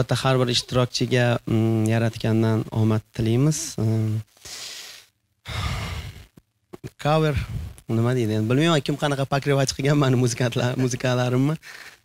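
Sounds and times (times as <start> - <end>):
man exhaling into microphone: 4.4 - 6.3.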